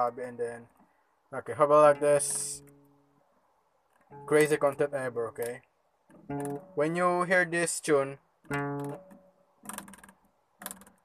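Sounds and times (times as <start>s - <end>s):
guitar strings plucked rattly clicks: 1.8s - 3.0s, 3.8s - 7.1s, 8.4s - 11.0s.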